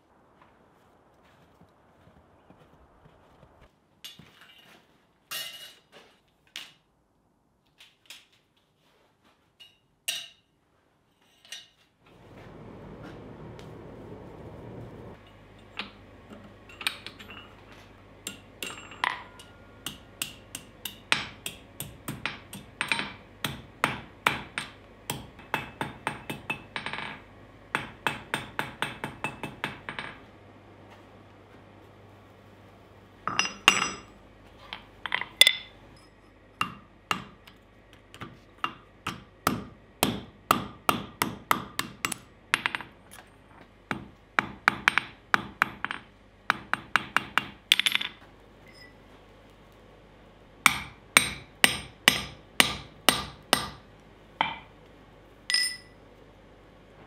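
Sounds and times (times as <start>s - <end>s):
hammer striking steel on anvil: 9.6s - 10.5s, 18.2s - 30.2s, 33.3s - 34.1s, 35.0s - 37.6s, 38.2s - 42.9s, 50.6s - 53.8s, 55.5s - 56.0s.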